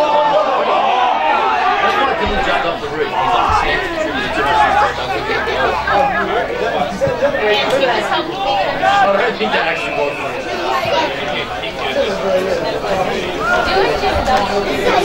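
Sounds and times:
babble of voices: 0.0s - 15.0s.

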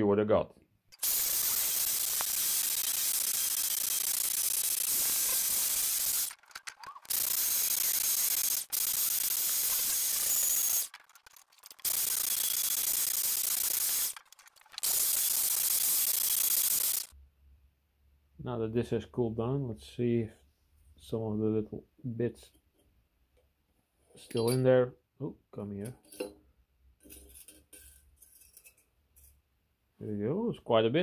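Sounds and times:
wire wheel drill scratching metal: 0.9s - 17.1s.

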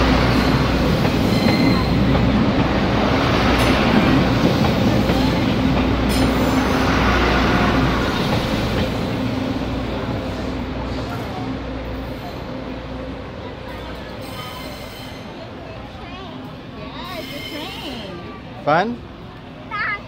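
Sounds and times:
diesel train passing: 0.0s - 20.0s.

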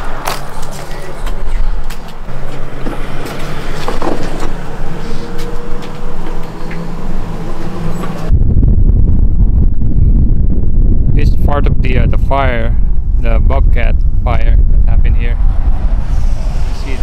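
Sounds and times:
vehicle engine humming: 0.0s - 9.6s, 14.0s - 17.0s
wind buffeting microphone: 0.0s - 17.0s.

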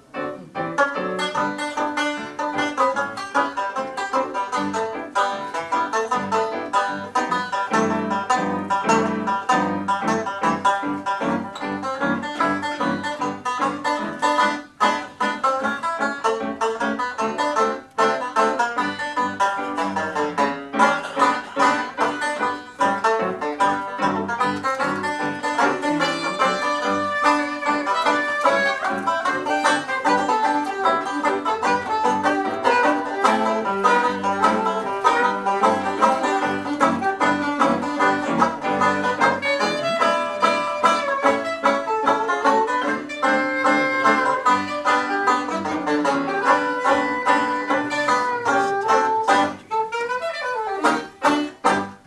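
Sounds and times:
banjo picking rapid notes: 0.0s - 52.0s
saxophone melody: 19.7s - 52.0s.

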